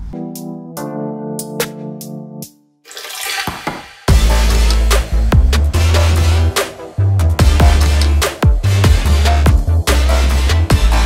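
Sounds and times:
electronic music with bass drop: 4.1s - 11.0s.

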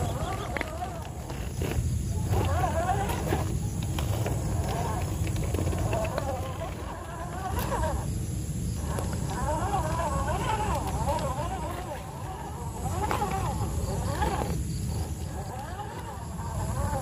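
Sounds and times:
electric motor and gears whining: 0.0s - 17.0s.

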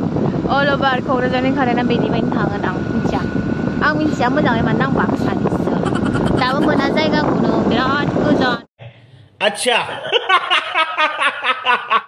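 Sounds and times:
moving vehicle rumble: 0.0s - 9.2s
person speaking: 3.9s - 10.3s.

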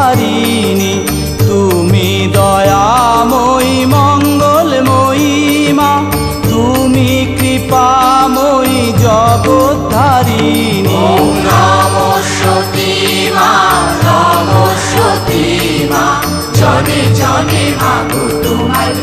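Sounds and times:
devotional music with bass beat: 0.0s - 19.0s.

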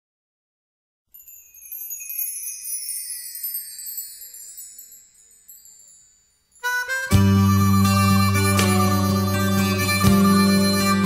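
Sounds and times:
chimes ringing: 1.1s - 11.0s.

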